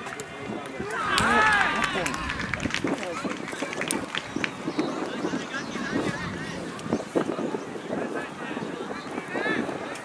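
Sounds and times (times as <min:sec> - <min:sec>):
young players shouting: 0:00.8 - 0:03.1.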